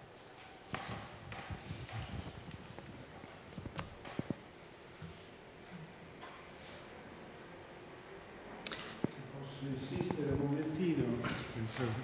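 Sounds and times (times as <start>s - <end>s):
soft knocks and rustles: 0.3s - 6.9s.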